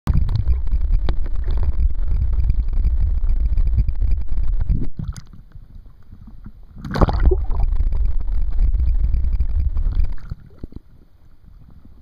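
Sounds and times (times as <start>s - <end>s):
muffled underwater rumble: 0.1s - 12.0s.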